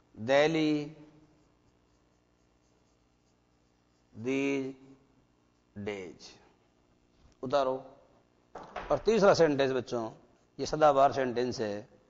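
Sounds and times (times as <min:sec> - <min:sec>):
marker pen on whiteboard: 0:01.0 - 0:04.9, 0:08.6 - 0:11.5.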